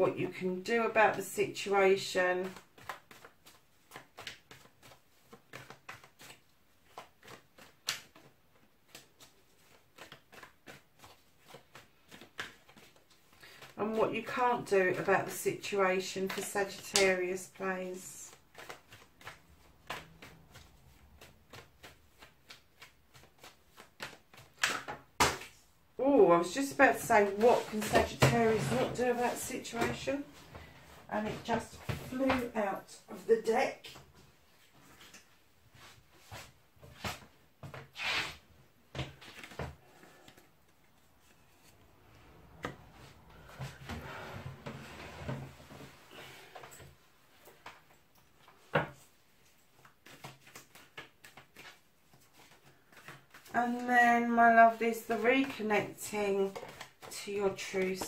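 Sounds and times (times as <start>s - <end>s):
cards being shuffled: 2.4s - 13.8s, 16.2s - 25.6s, 39.0s - 40.4s, 49.6s - 53.8s, 54.9s - 58.0s.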